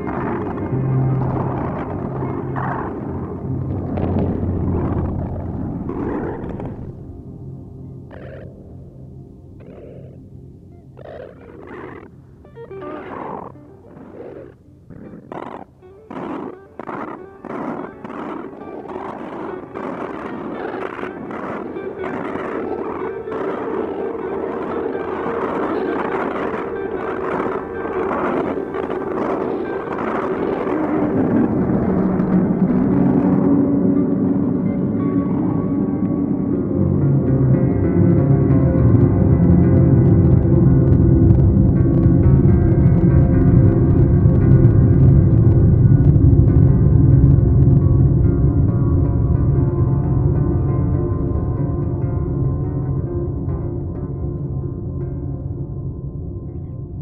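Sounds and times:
deep drone: 0.0s - 57.0s
electronic music with guitar: 0.0s - 57.0s.

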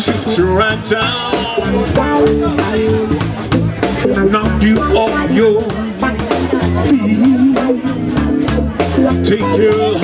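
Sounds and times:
person singing: 0.0s - 3.2s, 4.1s - 8.0s
drum kit hits: 0.0s - 10.0s
electric bass line: 0.0s - 10.0s
electric guitar: 0.0s - 10.0s.

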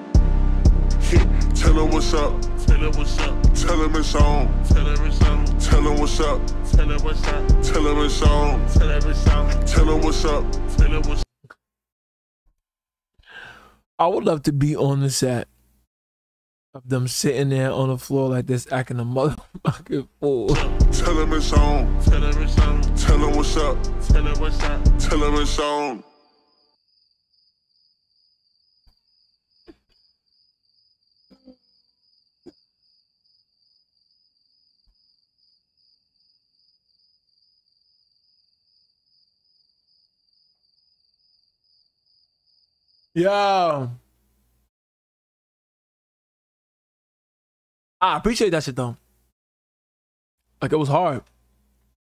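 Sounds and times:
man sighing: 13.2s - 13.8s.

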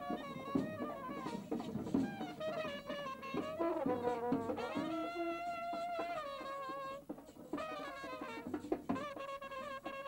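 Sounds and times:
marching brass band playing: 0.0s - 10.0s.

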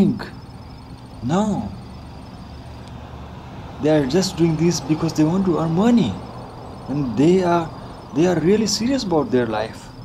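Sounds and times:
man talking: 0.0s - 0.4s, 1.2s - 1.8s, 3.8s - 6.3s, 6.9s - 10.0s
low background rumble: 0.0s - 10.0s.

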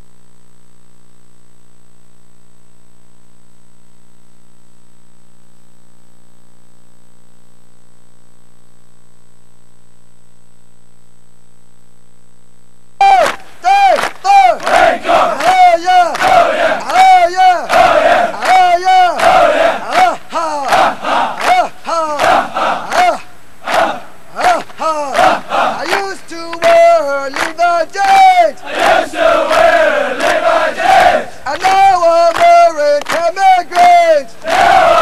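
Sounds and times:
recruits shouting chant in unison: 13.6s - 35.0s.

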